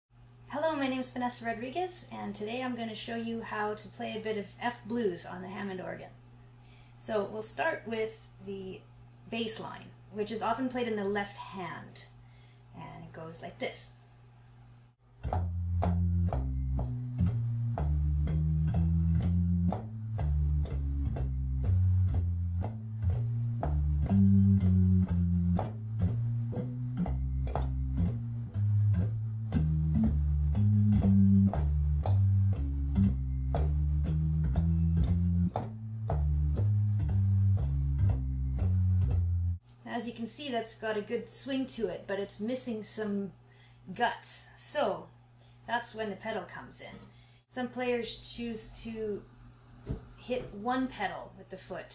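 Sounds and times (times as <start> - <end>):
organ walking bass line: 15.1 - 39.6.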